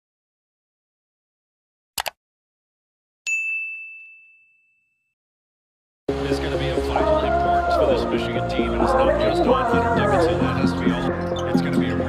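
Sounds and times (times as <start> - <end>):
quick clicks: 2.0 - 2.2
bright bell-like ding: 3.3 - 5.1.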